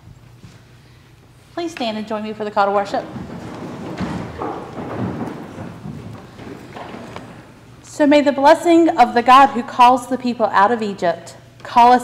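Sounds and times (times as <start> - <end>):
congregation shuffling and rustling: 0.0 - 8.0.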